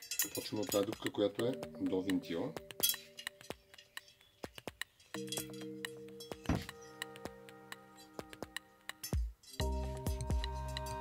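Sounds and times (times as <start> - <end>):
bicycle spokes clinking: 0.0 - 7.1, 7.7 - 9.6
background music with held notes: 0.0 - 11.0.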